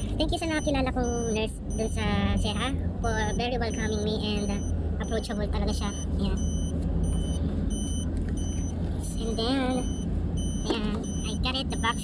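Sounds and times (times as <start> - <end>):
car interior rumble: 0.0 - 12.0
electronic warning chime beeps: 0.4 - 2.1, 3.1 - 12.0.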